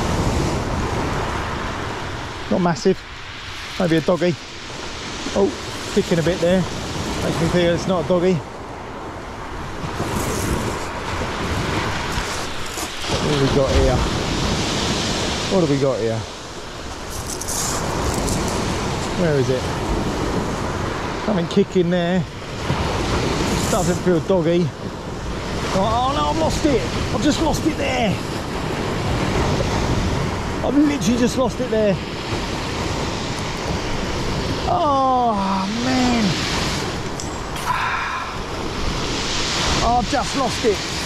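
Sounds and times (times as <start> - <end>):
wind on microphone: 0.0 - 15.6, 16.4 - 21.3, 22.4 - 41.0
surf rushing: 0.0 - 41.0
short breathy sound: 37.6 - 38.5.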